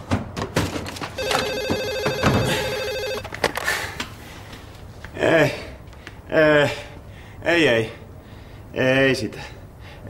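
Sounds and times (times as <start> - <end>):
telephone ringing: 1.2 - 3.3
phone being handled: 1.2 - 3.7.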